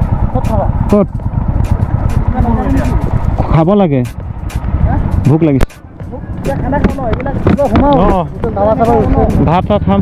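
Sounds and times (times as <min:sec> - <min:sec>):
motorcycle engines rumbling: 0:00.0 - 0:10.0
wind on microphone: 0:00.0 - 0:10.0.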